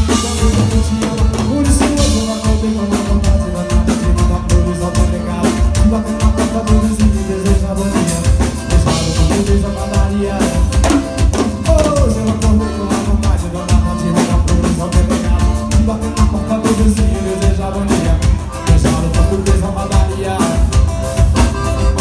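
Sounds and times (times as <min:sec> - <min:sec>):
acoustic guitar: 0:00.0 - 0:22.0
drum kit beat: 0:00.0 - 0:22.0
live band playing: 0:00.0 - 0:22.0.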